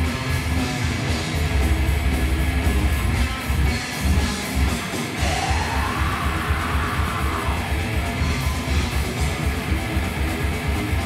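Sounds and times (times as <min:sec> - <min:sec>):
distorted electric guitars: 0:00.0 - 0:11.0
drums with fast kick drum: 0:00.0 - 0:11.0
shouted vocal: 0:05.2 - 0:08.5.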